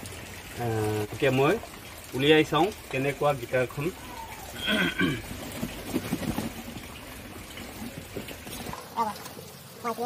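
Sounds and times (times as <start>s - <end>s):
rustling packaging: 5.3s - 6.8s.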